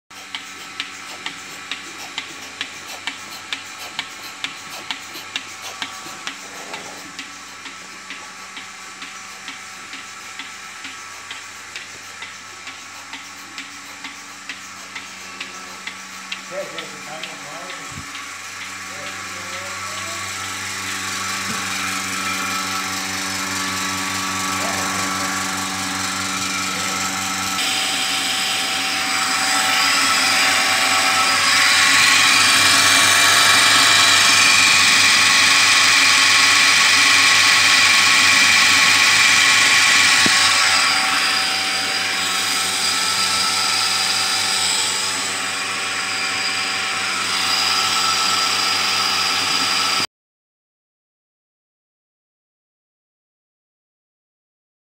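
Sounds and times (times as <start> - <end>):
vacuum pump droning: 0.1 - 50.0.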